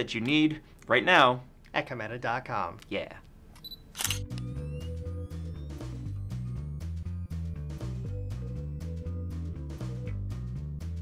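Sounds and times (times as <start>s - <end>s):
camera shutter click: 3.6s - 4.5s
music with stepping bass line: 4.4s - 11.0s.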